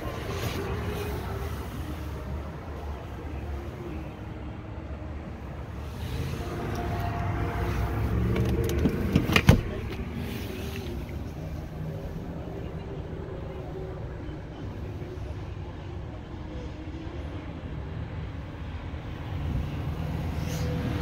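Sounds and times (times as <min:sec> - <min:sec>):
car cabin rumble: 0:07.7 - 0:11.6.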